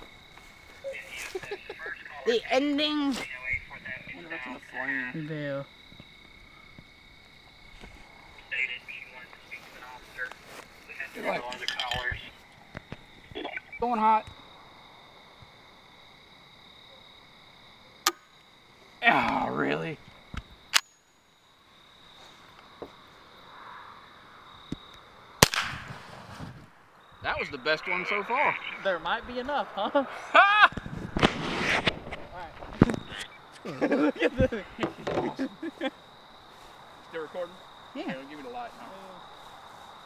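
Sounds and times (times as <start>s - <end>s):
dispatcher voice on radio: 8.5s - 10.2s, 27.3s - 28.9s
rifle shot: 25.4s - 26.5s
rushing noise of fire flaring: 25.7s - 33.2s.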